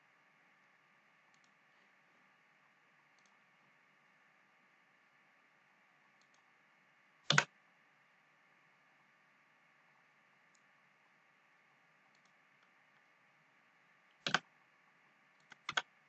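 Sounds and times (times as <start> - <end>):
low steady hiss: 0.0 - 16.0
computer mouse clicks: 1.3 - 1.6, 3.2 - 3.4, 6.2 - 6.4, 7.3 - 7.5, 12.1 - 12.7, 14.1 - 14.5, 15.3 - 15.9.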